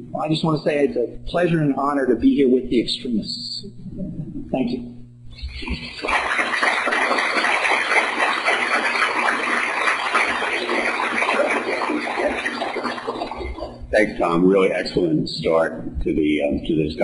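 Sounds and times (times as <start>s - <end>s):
audience applauding: 5.8s - 13.7s.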